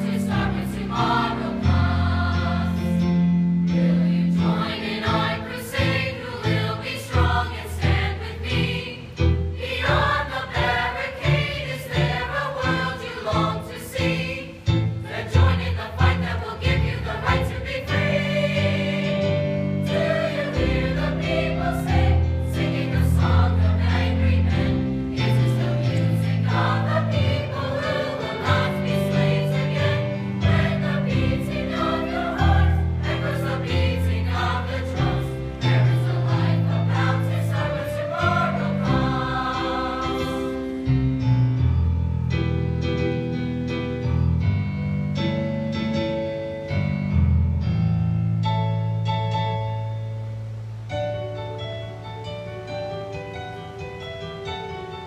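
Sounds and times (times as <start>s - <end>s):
mixed choir singing in harmony: 0.0s - 41.7s.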